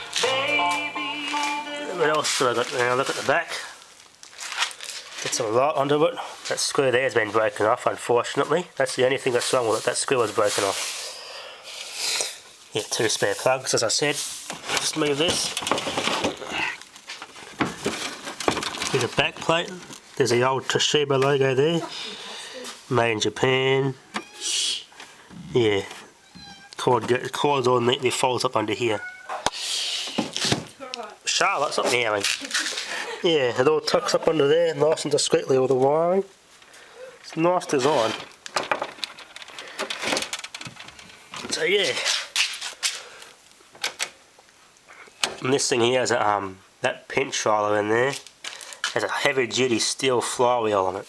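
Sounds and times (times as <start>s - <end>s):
handling knocks and rustles: 14.2s - 20.2s, 37.6s - 43.0s.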